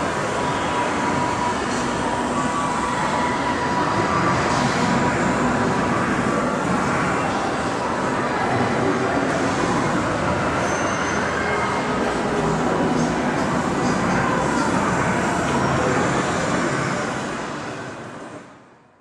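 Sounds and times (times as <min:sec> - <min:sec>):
loud rumbling noise: 0:00.0 - 0:18.8.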